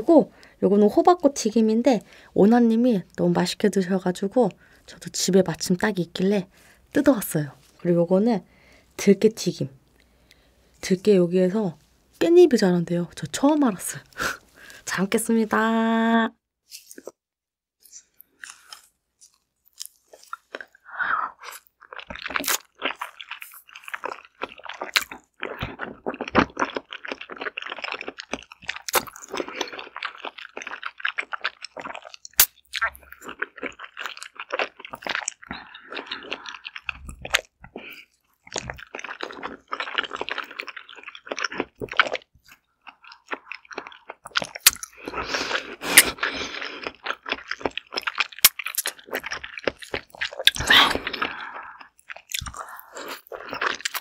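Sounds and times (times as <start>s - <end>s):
biting and wet chewing: 17.8s - 54.0s.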